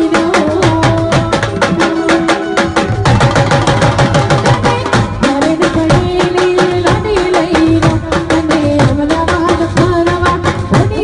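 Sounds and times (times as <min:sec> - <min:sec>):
fast drumming with sticks: 0:00.0 - 0:11.0.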